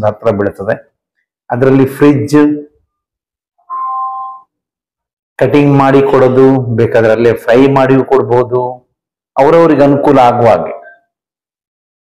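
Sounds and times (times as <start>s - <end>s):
two-tone electronic chime: 3.6s - 4.5s.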